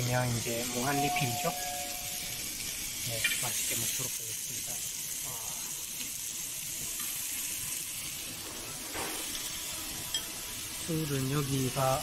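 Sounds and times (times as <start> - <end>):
meat sizzling on grill pan: 0.0 - 12.0.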